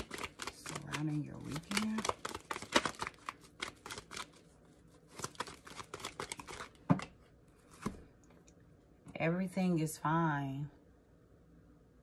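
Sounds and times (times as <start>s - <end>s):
cards being shuffled: 0.0s - 8.0s.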